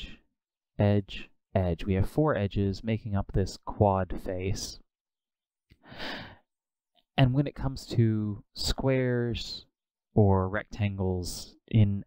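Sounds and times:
man breathing in: 5.8s - 6.5s.

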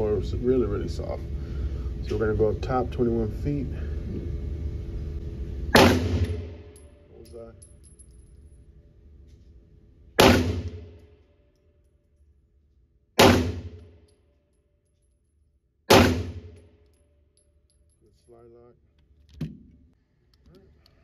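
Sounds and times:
pistol shots echoing indoors: 5.7s - 6.8s, 10.2s - 11.7s, 13.2s - 14.1s, 15.9s - 17.0s.

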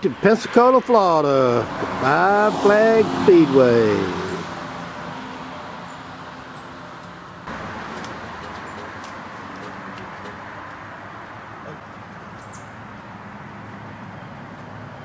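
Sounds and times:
high bird chirp: 12.3s - 12.8s.

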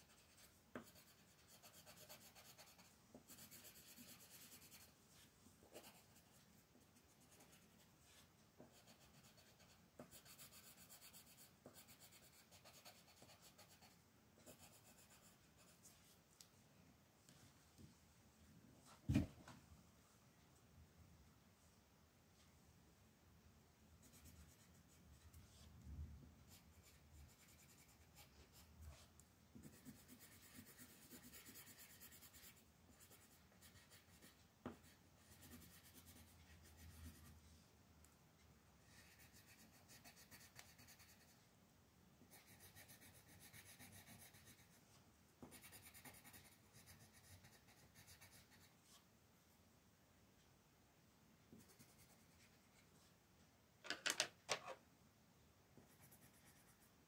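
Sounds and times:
pencil scratching on paper: 0.0s - 6.4s, 7.0s - 16.0s, 24.0s - 25.7s, 26.5s - 29.0s, 29.6s - 37.4s, 38.8s - 41.4s, 42.3s - 44.8s, 45.4s - 49.0s, 51.5s - 52.8s, 55.8s - 56.9s.

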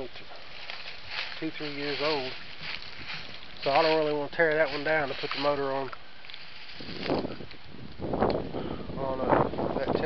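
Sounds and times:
footsteps crunching dry leaves: 0.0s - 8.1s.

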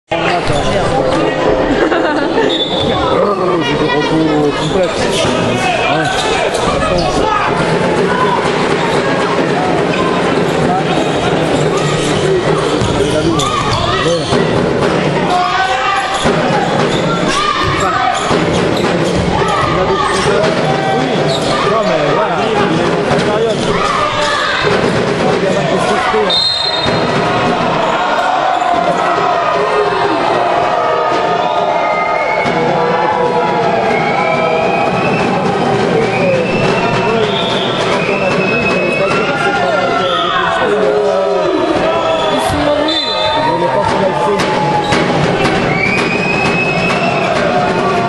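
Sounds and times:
voices echoing in a gymnasium: 0.1s - 48.0s
basketball bouncing on court floor: 12.7s - 15.0s.

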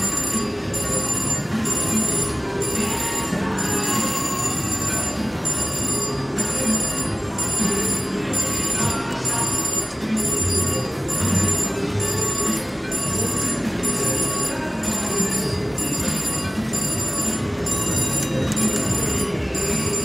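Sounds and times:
slot machine ringing tones: 0.0s - 20.0s.

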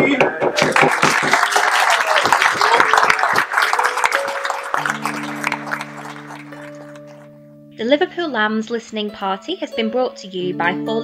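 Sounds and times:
audience applause: 0.4s - 7.3s
held chord of low notes: 3.5s - 8.4s.

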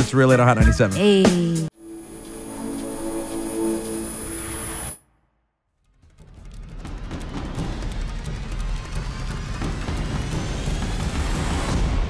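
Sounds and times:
thin high whine: 1.8s - 5.0s.

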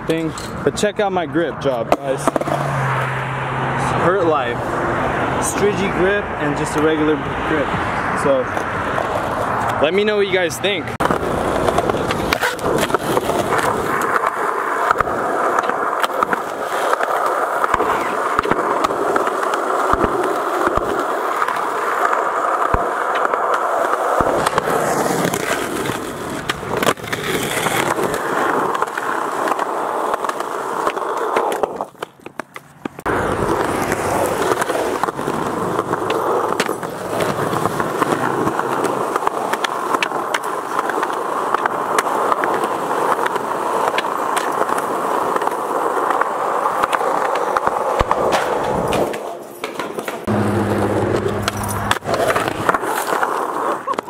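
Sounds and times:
skateboard wheels rolling on concrete: 0.0s - 54.0s
skateboard clacks and landings: 11.0s - 54.0s.

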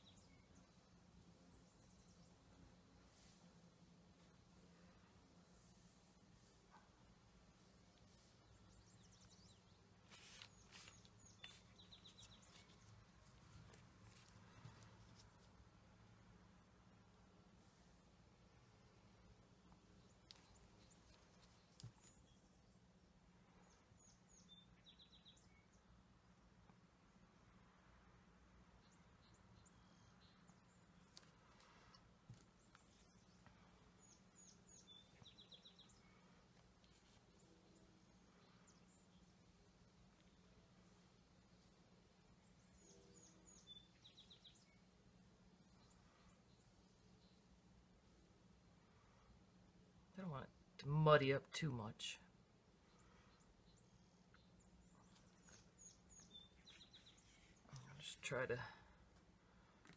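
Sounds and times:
faint rustles: 0.0s - 15.9s, 30.7s - 44.7s
low steady hum: 0.0s - 59.9s
faint bird chirps: 7.6s - 15.4s, 23.6s - 26.0s, 28.8s - 47.6s, 52.2s - 59.8s.

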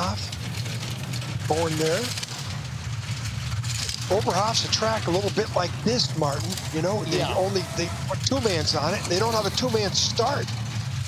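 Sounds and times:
bobsleigh runners rumbling on ice: 0.0s - 11.0s.

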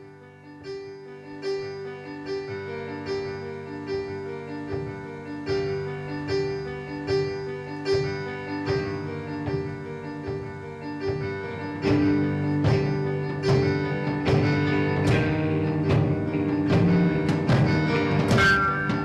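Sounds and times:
electronic keyboard playing: 0.0s - 19.0s.

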